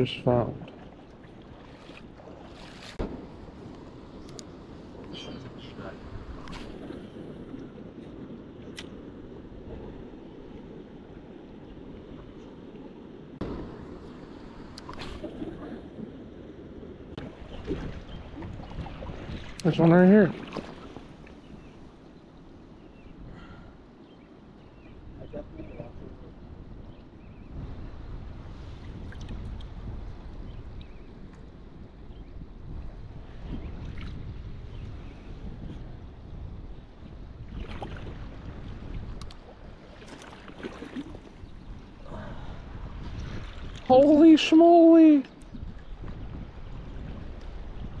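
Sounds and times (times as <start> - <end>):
river water swishing around legs: 0.5 - 12.8, 14.5 - 16.2, 17.2 - 22.0, 37.4 - 48.0
wind noise on microphone: 1.3 - 48.0.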